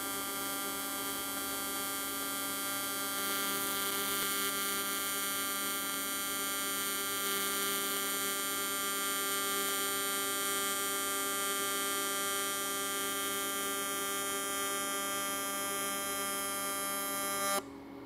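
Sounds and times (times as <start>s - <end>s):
welding arc buzzing: 0.0s - 17.6s.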